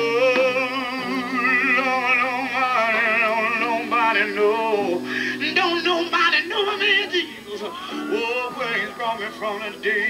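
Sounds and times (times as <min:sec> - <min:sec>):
man singing with vibrato: 0:00.0 - 0:10.0.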